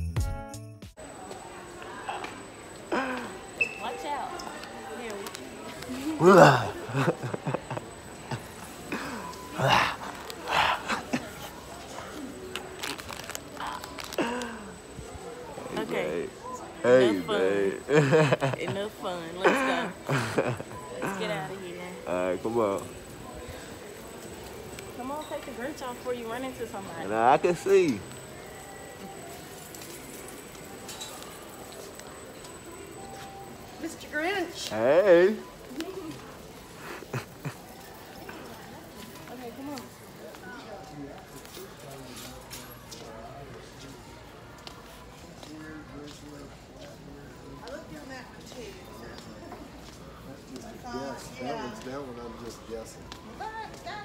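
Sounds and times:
faint indistinct voices: 1.0 - 54.0.

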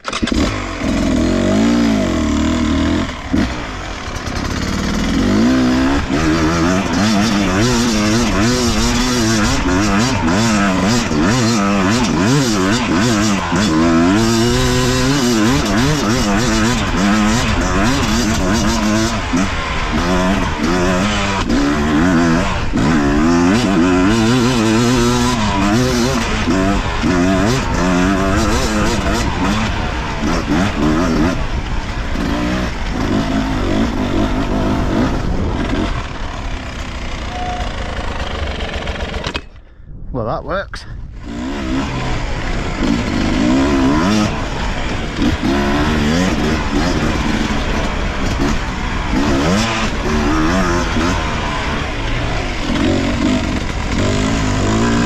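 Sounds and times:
two-stroke motorcycle engine revving: 0.0 - 39.8, 40.8 - 55.0.

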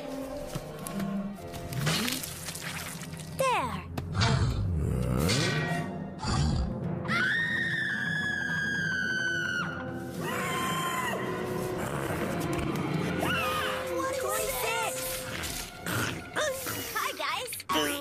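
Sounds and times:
music: 0.0 - 18.0.

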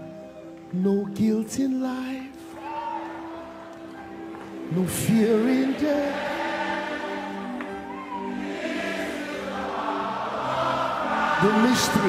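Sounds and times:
musical accompaniment: 0.0 - 12.0
congregation and choir singing: 2.4 - 12.0.

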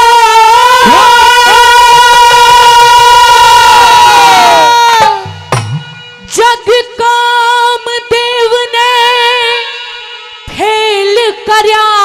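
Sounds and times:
singer and chorus holding high note: 0.0 - 5.4.

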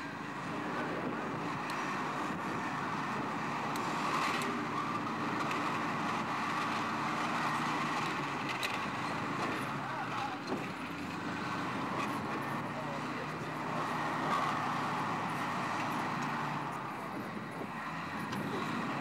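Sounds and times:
bulldozer diesel engine running: 0.0 - 19.0.

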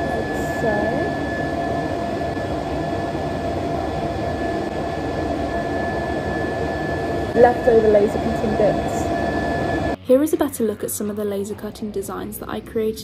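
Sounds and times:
fan rushing: 0.0 - 13.0
thin high whine: 0.0 - 13.0.

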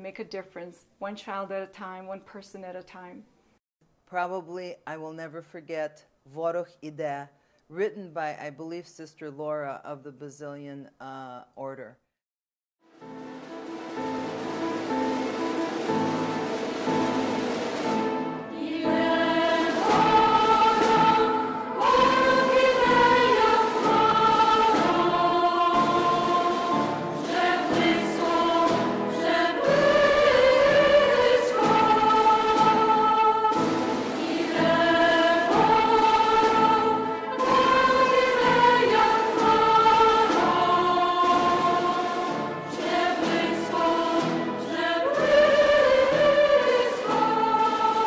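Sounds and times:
women's choir singing in harmony: 13.7 - 48.0.

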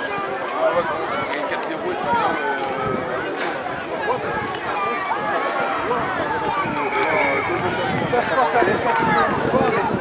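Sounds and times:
children's voices chattering: 0.0 - 10.0.

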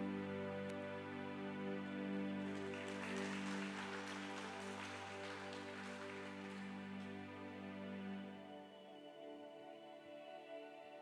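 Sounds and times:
soft keyboard chords: 0.0 - 11.0.

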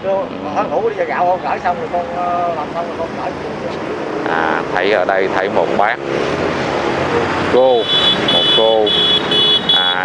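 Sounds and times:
motorbikes passing: 0.0 - 10.0
person making hesitation sound: 0.2 - 0.7, 3.7 - 4.8, 9.6 - 10.0.

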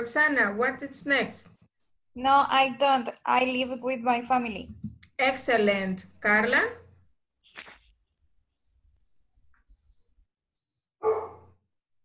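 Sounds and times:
dog bark: 11.0 - 11.6.

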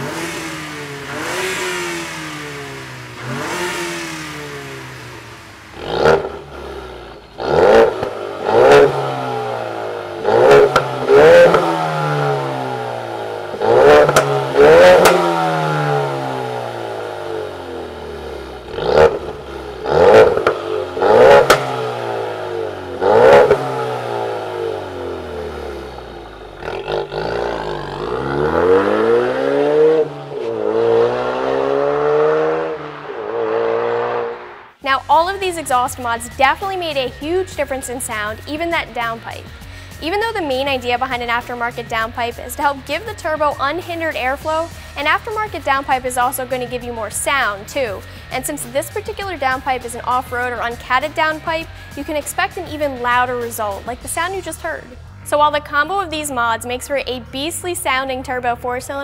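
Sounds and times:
car accelerating away: 0.0 - 34.8
car engine revving: 0.0 - 59.0.

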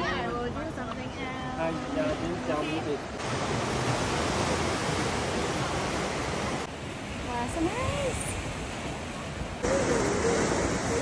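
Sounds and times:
surf washing over rocks: 0.7 - 11.0.

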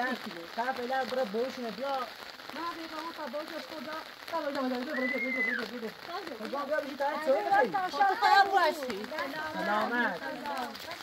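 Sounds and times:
rain falling on ground: 0.0 - 11.0.

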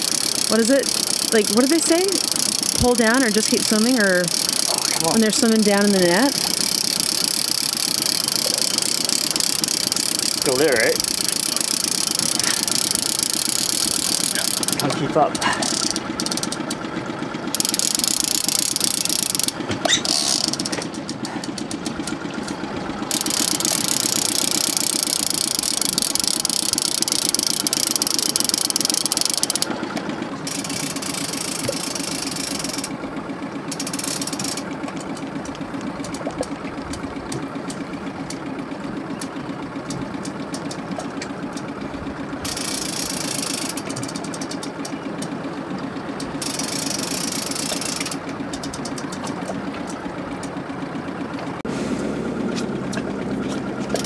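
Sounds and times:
outboard motors running: 0.0 - 54.0.

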